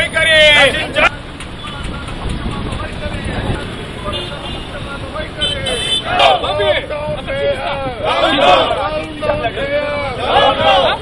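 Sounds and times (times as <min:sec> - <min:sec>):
faint crowd voices: 0:00.0 - 0:11.0
street traffic noise: 0:00.0 - 0:11.0.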